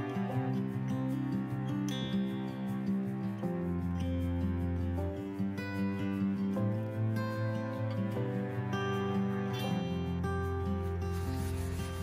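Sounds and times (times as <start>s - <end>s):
soft background music: 0.0s - 12.0s
paper towel rubbing wooden floor: 11.0s - 12.0s.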